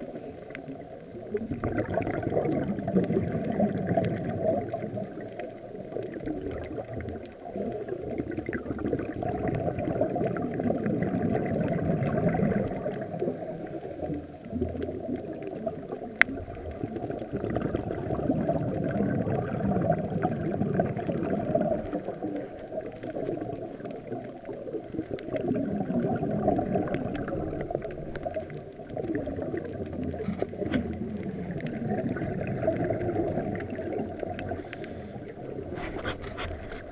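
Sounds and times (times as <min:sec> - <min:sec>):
muffled underwater rumble: 0:00.0 - 0:36.9.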